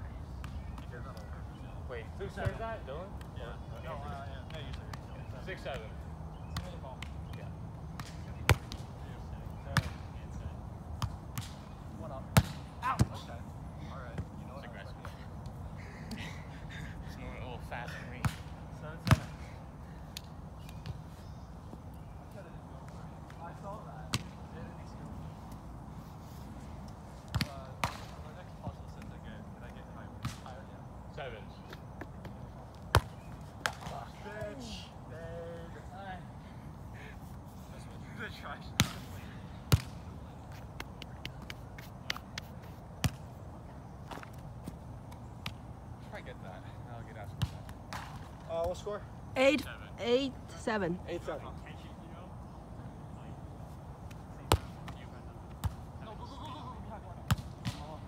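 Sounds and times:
faint distant voices: 0.0 - 58.0.

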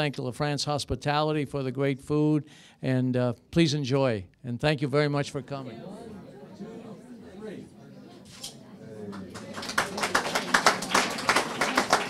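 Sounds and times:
people clapping: 9.0 - 12.0.

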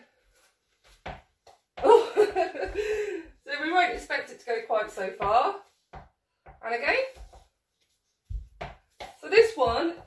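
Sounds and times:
small ball bouncing on wooden floor: 0.9 - 7.5, 8.3 - 10.0.

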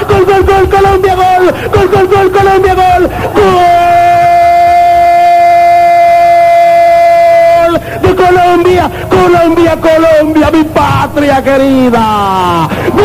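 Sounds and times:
commentator's drawn-out goal cry: 0.0 - 13.0
man shouting quickly: 0.0 - 13.0.

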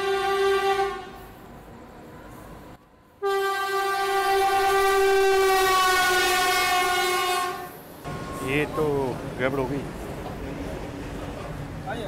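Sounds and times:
locomotive horn blast: 0.0 - 1.3, 3.2 - 7.8.

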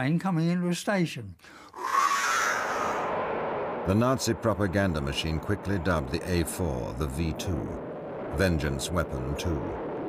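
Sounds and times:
rocket motor roaring: 1.8 - 8.4.

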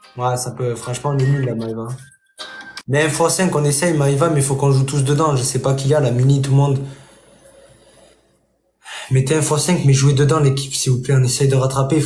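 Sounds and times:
man speaking: 0.0 - 2.1, 2.9 - 7.0, 8.9 - 12.0.

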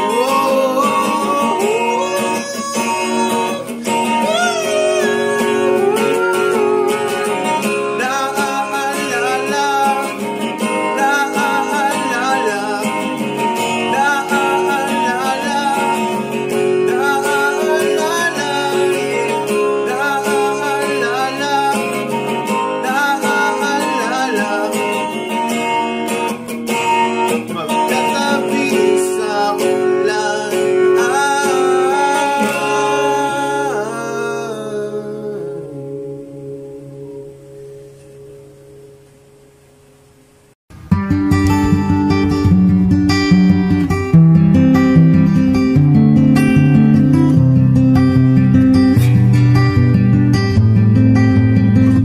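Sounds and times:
man singing a pop-rock ballad: 0.0 - 25.5, 27.3 - 36.0
strummed acoustic guitar: 0.0 - 52.0.

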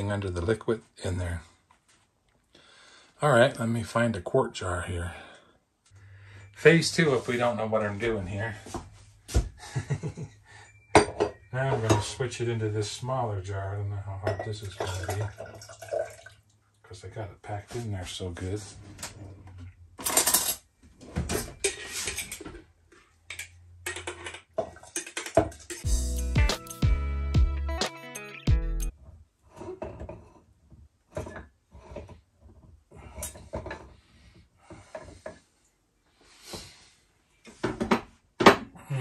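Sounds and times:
music: 25.8 - 28.9.

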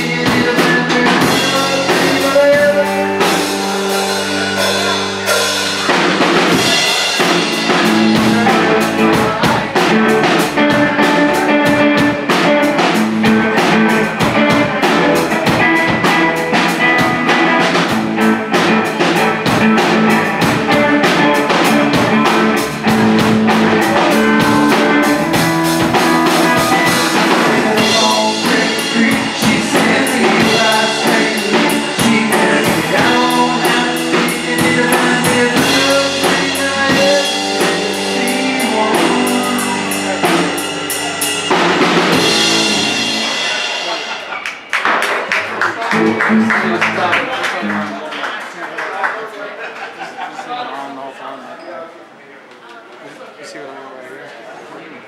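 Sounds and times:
drum kit: 0.0 - 47.9
electric guitar: 0.0 - 48.0.

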